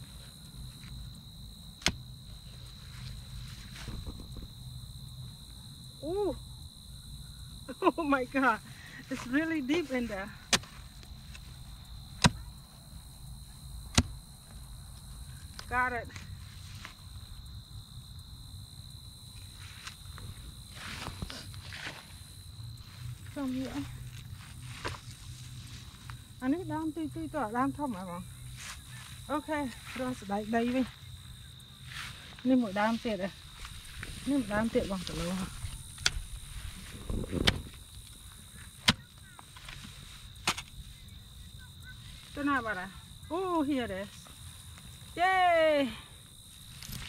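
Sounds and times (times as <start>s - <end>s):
footsteps through dry grass: 19.5s - 26.3s, 28.5s - 38.8s
hoe blade chopping into soil: 37.3s - 37.8s.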